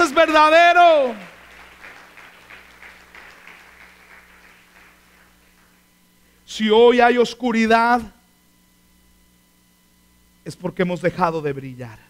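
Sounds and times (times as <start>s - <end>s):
congregation applauding: 0.0s - 5.9s
faint low hum: 0.0s - 12.0s.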